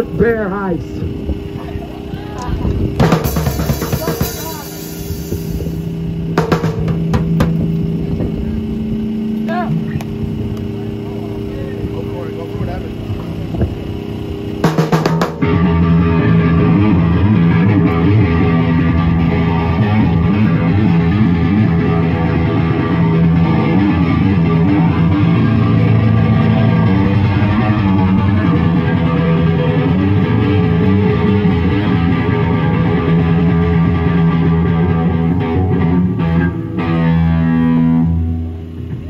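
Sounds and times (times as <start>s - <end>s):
low amp hum: 0.0s - 39.0s
rock band playing: 2.9s - 39.0s
cymbal and drum hits: 3.0s - 7.7s, 14.6s - 15.6s.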